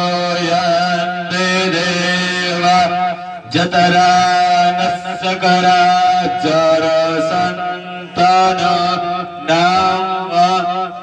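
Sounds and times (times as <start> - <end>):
priest chanting mantras: 0.0 - 11.0.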